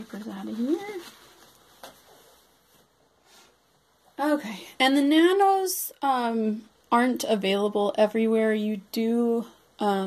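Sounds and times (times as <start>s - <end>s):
faint soft sound: 0.0s - 4.8s.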